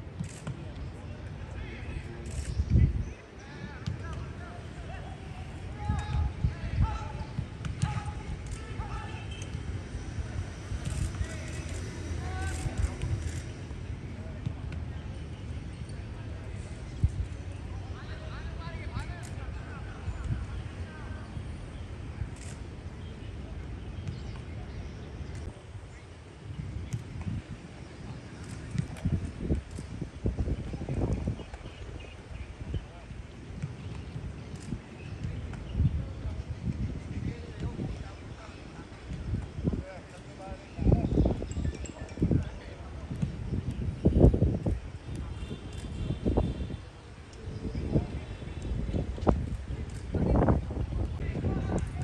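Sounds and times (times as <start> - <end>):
players shouting calls: 3.4 - 9.7.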